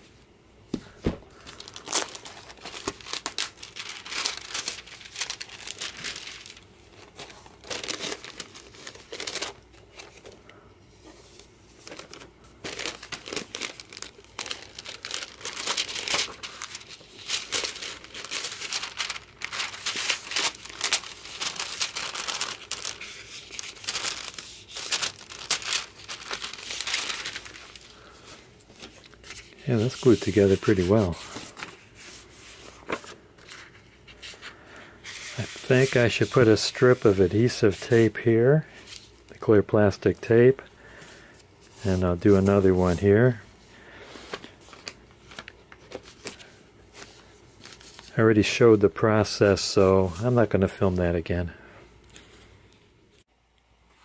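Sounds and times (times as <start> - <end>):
book pages being handled: 0.7 - 38.2, 44.1 - 48.1
plastic sheets crinkling: 0.8 - 51.4.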